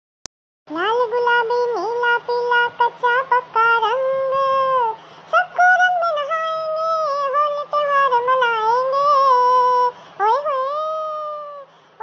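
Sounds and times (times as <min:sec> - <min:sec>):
high cartoon cat voice singing: 0:00.7 - 0:11.6.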